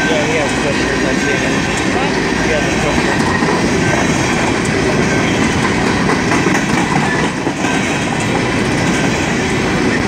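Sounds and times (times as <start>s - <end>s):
train wheels on rails: 0.0s - 10.0s.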